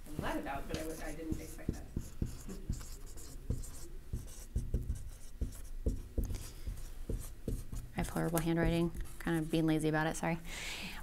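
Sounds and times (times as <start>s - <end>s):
pen writing scratchily: 0.8s - 9.6s.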